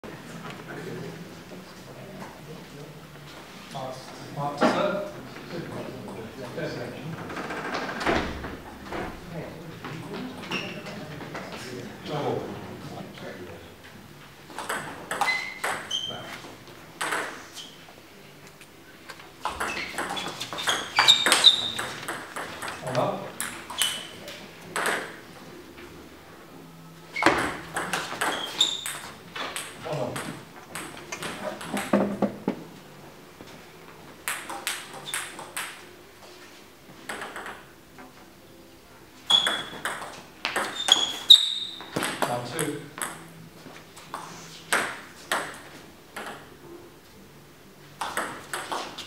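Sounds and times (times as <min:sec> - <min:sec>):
table tennis ball hitting bats and table: 0:14.5 - 0:16.1, 0:17.0 - 0:17.5, 0:19.4 - 0:25.3, 0:27.2 - 0:32.7, 0:34.2 - 0:35.8, 0:37.0 - 0:37.7, 0:39.3 - 0:43.3, 0:44.1 - 0:46.6, 0:48.0 - 0:49.0.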